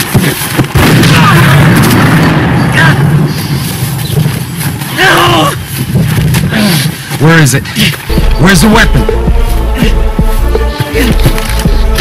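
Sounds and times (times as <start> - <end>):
man's voice: 7.2 - 11.4
steady low drone: 8.1 - 12.0.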